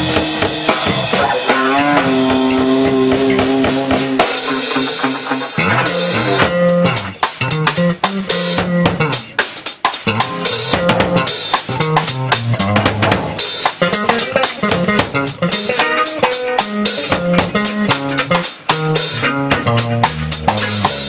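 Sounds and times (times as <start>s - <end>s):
drum kit playing: 0.0s - 21.0s
electric bass line: 0.0s - 21.0s.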